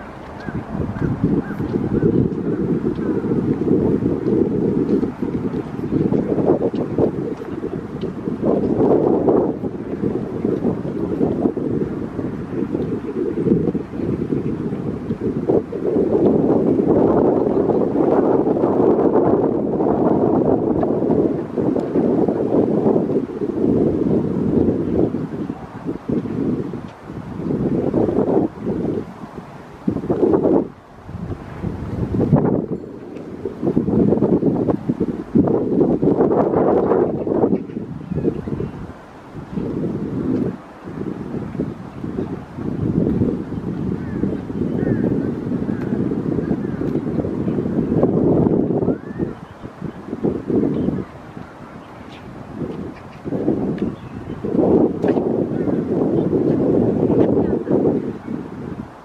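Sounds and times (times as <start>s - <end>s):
wind gusting across microphone: 0.0s - 59.0s.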